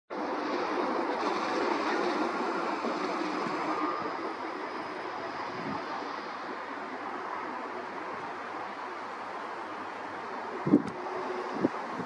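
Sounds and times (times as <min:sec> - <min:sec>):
train wheels rolling on rails: 0:00.1 - 0:12.0.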